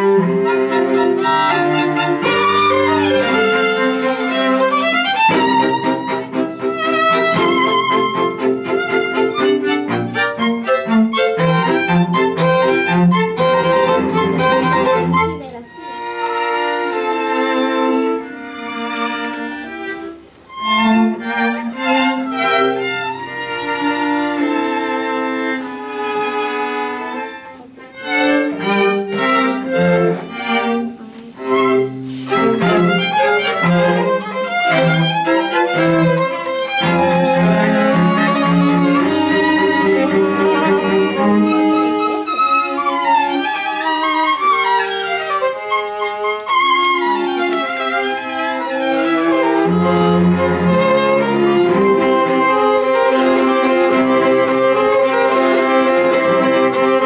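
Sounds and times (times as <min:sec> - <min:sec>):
string quartet playing: 0:00.0 - 0:57.0.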